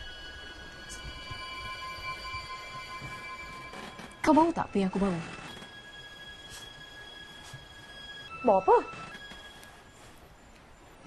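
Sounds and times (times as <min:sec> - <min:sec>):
eerie drone of high held tones: 0:00.0 - 0:11.0.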